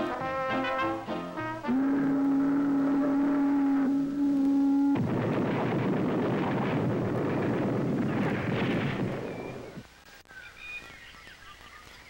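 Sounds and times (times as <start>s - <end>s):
ship's horn long blast: 1.4s - 5.0s.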